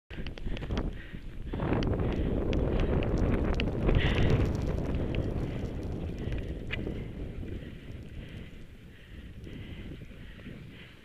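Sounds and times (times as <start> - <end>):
light ticks: 0.1 - 8.6, 9.4 - 9.7
wind rushing over microphone: 0.1 - 11.0.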